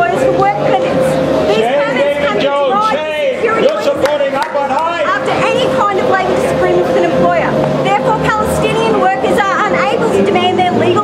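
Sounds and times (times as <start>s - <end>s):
woman speaking: 0.0s - 4.0s, 5.0s - 11.0s
crowd chatter: 0.0s - 11.0s.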